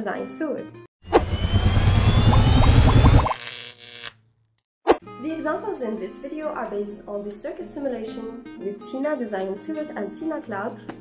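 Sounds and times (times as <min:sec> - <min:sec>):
faint rising whine: 0:01.1 - 0:03.4.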